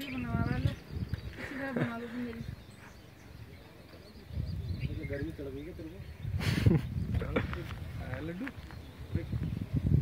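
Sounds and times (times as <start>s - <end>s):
outdoor background: 0.0s - 10.0s.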